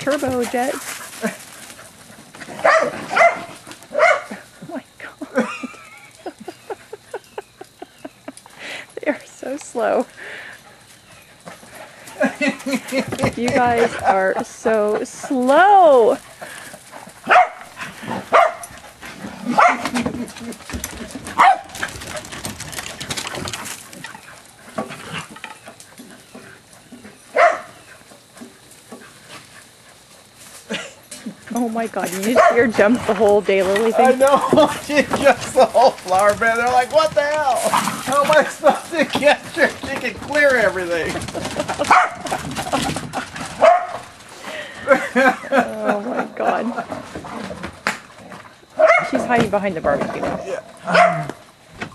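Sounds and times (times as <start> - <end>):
dogs barking and yelping: 0.2 - 4.6, 16.3 - 31.4, 32.1 - 33.0, 40.3 - 45.6, 46.8 - 49.3, 50.4 - 51.5
dog barking: 2.6 - 4.4, 17.3 - 17.7, 18.3 - 18.7, 19.5 - 19.9, 21.4 - 21.8, 27.3 - 27.8, 32.4 - 32.6, 41.9 - 42.3, 43.6 - 44.0, 48.8 - 49.2, 50.9 - 51.4
person laughing: 5.0 - 9.2, 12.2 - 14.2, 30.7 - 31.3, 41.3 - 43.3, 44.5 - 46.8.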